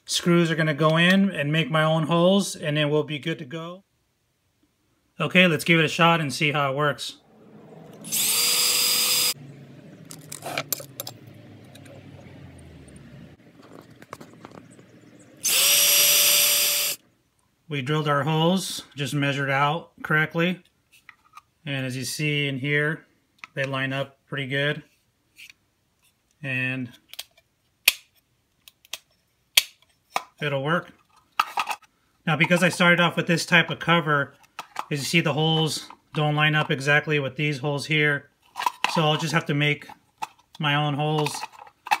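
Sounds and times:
electric drill whining: 7.9s - 9.4s, 15.4s - 17.0s
clicks and handling sounds: 10.0s - 12.3s, 12.9s - 15.7s, 20.6s - 21.5s, 25.3s - 32.9s, 34.3s - 36.8s, 38.4s - 42.0s.

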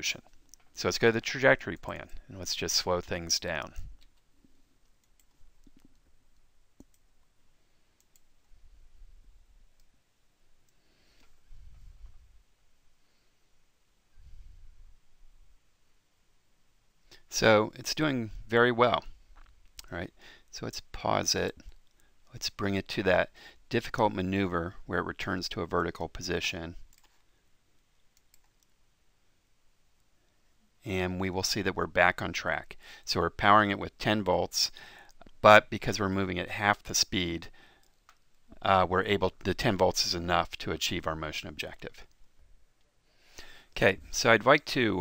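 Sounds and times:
computer mouse clicks: 4.0s - 7.1s, 28.2s - 28.7s.

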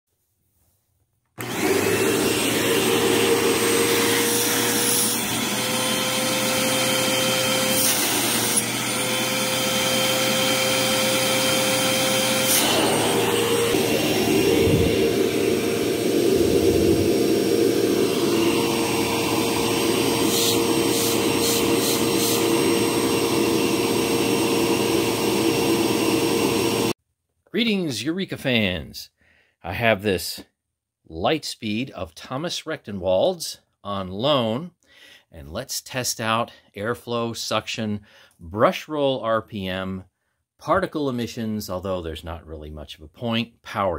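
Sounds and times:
vacuum cleaner motor running: 1.4s - 27.0s.

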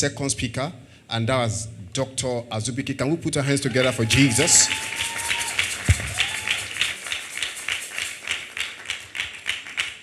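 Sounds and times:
audience clapping in time: 3.7s - 10.0s.

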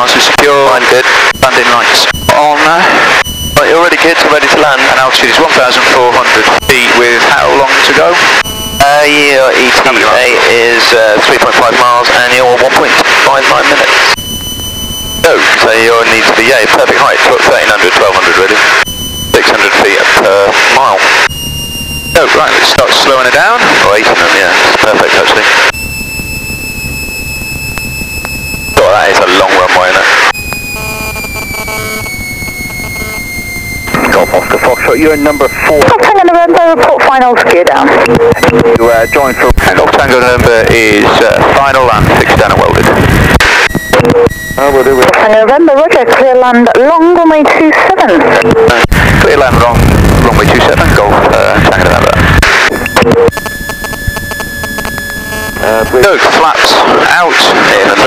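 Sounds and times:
faint aircraft engine drone: 0.0s - 45.8s, 47.4s - 58.0s
high-pitched electronic tone: 1.3s - 10.9s, 14.0s - 16.7s, 18.7s - 24.1s, 25.7s - 36.2s, 37.8s - 45.4s, 49.5s - 56.4s.

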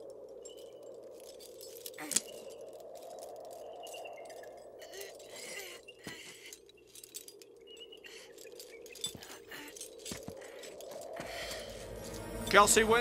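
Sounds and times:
climbing gear clinking: 0.0s - 13.0s.

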